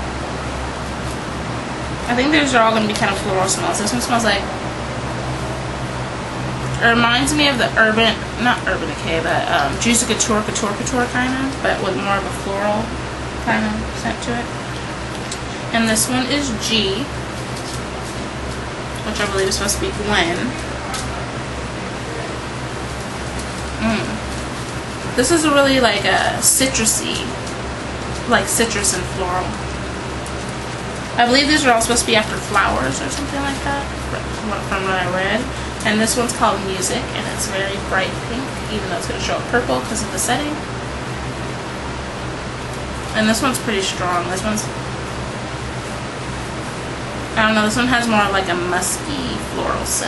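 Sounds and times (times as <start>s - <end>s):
low hum: 0.0s - 50.0s
person murmuring: 13.5s - 14.0s, 23.8s - 24.3s.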